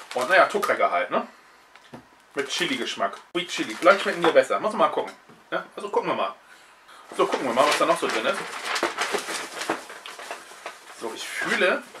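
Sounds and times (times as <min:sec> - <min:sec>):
cardboard packaging rustling: 0:00.0 - 0:00.8, 0:03.5 - 0:04.6, 0:07.1 - 0:12.0.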